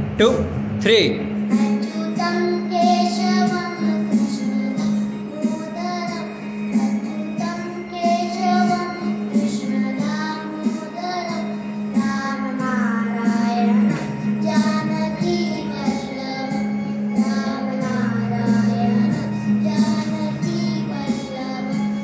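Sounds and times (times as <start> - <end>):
electronic keyboard accompaniment: 0.0 - 22.0
boy singing: 1.5 - 22.0.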